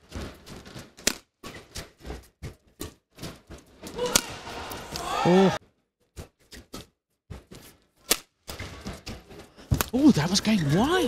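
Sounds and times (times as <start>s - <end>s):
rackets hitting shuttlecock: 0.2s - 1.9s, 3.8s - 5.1s.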